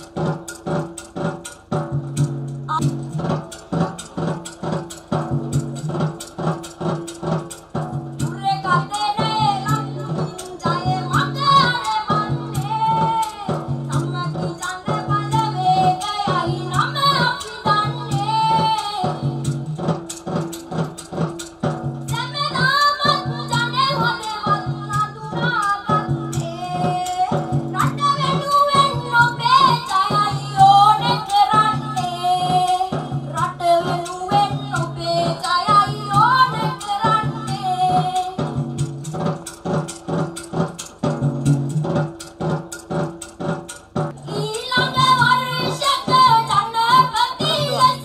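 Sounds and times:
instrumental accompaniment with drums: 0.0 - 48.0
woman singing into microphone: 8.2 - 19.4, 22.1 - 38.5, 44.2 - 48.0.

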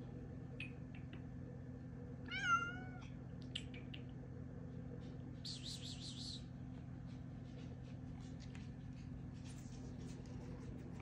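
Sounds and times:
cat meowing: 2.3 - 3.1.

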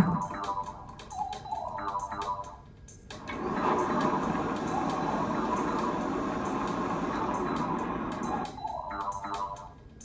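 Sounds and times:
background music with light beat: 0.0 - 10.0
steady rushing noise: 3.2 - 8.6.

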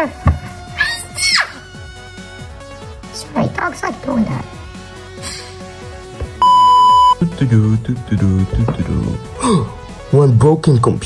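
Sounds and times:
censor bleep tone: 6.4 - 7.2.

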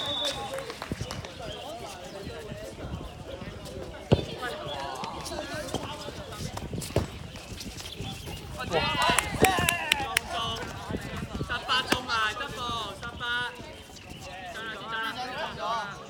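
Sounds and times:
players' voices and shouts: 8.4 - 16.0.

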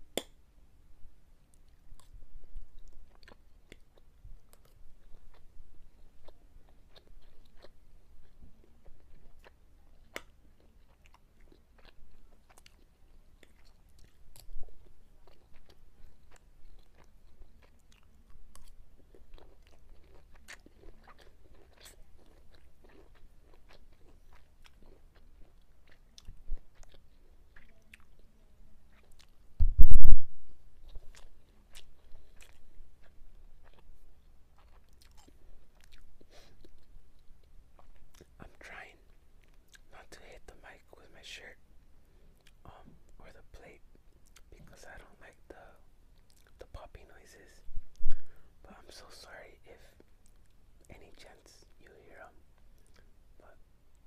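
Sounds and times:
person chewing: 1.6 - 5.4, 6.0 - 14.6, 15.2 - 28.3, 28.9 - 30.0, 30.8 - 33.9, 34.5 - 40.2, 42.4 - 43.0, 45.6 - 46.8, 50.0 - 53.6
bass-heavy microphone pop: 29.6 - 30.6.

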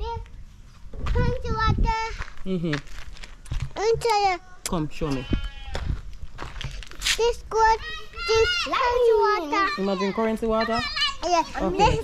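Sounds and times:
young child talking: 0.0 - 0.2, 1.0 - 2.3, 3.8 - 4.6, 7.1 - 12.0.

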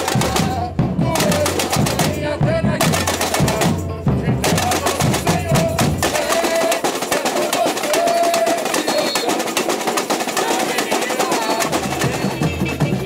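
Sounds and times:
samba drums playing fast rhythm: 0.0 - 13.0
voices calling: 0.0 - 13.0.

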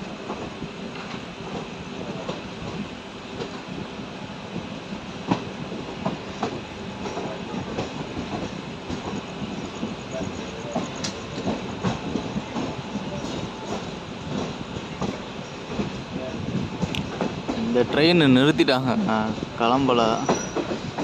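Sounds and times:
train wheels rumbling on track: 0.0 - 21.0
wheels clicking over rail joints: 4.5 - 18.5, 19.3 - 21.0.

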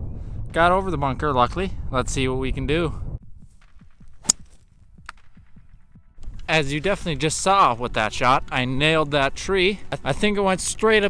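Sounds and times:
golf club striking ball: 4.2 - 4.6.

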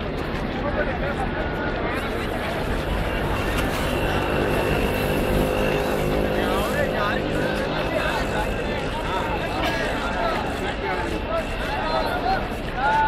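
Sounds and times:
crowd voices: 0.0 - 13.0.

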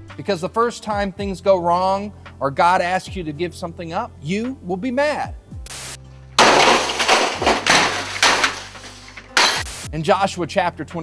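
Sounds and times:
breaking clatter: 6.4 - 9.8
office equipment being smashed: 6.4 - 9.8.

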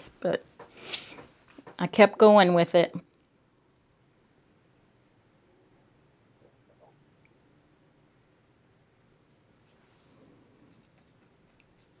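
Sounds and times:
glue stick rubbing on cardstock: 10.4 - 12.0.

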